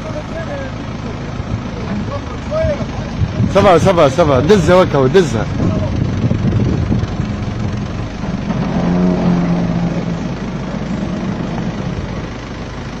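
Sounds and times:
vehicle engine running: 0.0 - 13.0.

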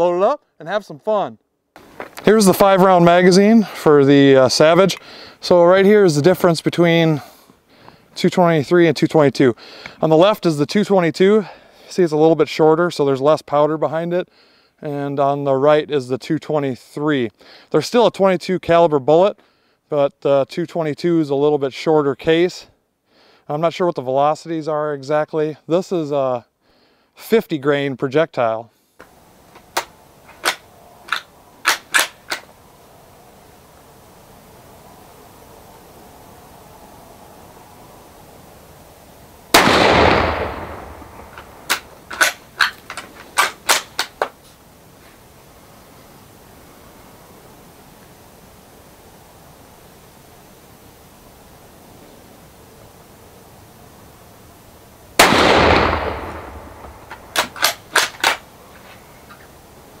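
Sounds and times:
rifle shots with echo: 39.6 - 41.8, 55.2 - 58.1.

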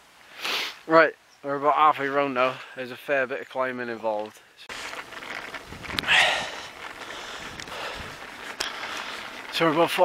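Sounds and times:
wind on microphone: 5.2 - 8.4
cyclist breathing out: 5.9 - 9.5.

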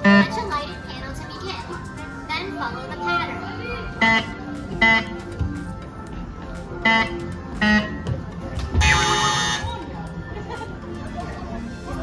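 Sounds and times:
children's voices and chatter: 0.0 - 4.7
background music: 0.0 - 12.0.

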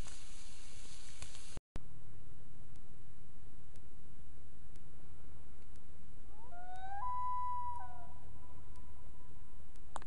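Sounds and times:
outdoor background hiss: 0.0 - 6.5
low hum: 0.0 - 10.0
faint clicks: 5.5 - 5.9.

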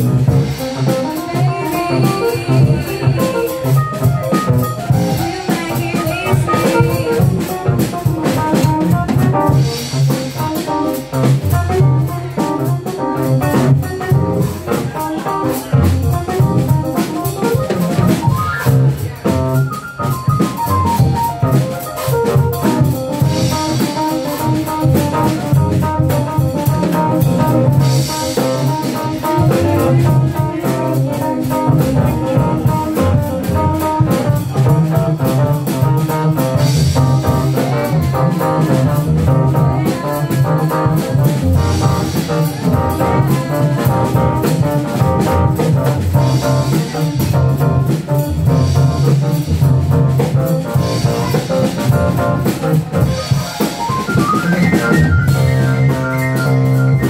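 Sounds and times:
electric keyboard playing jazz: 0.0 - 57.0.

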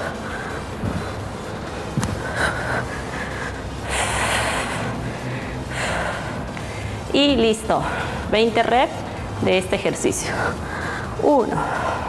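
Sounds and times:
woman breathing hard: 0.0 - 7.1, 10.3 - 12.0.

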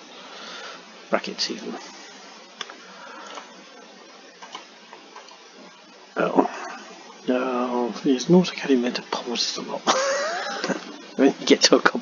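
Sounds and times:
microphone hiss: 0.0 - 12.0
computer mouse clicks: 4.4 - 5.4.

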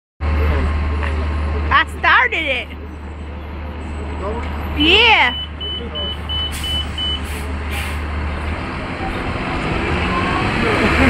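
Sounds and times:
people's voices: 0.2 - 11.0.

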